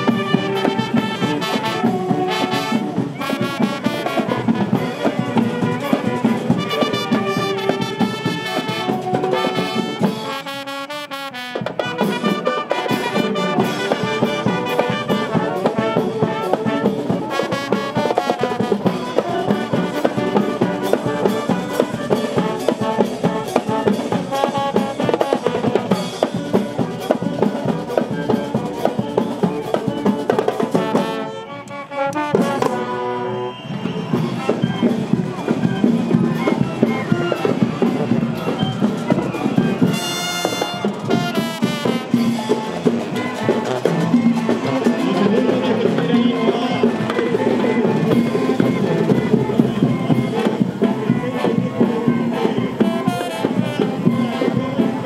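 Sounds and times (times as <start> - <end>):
marching band playing: 0.0 - 55.0.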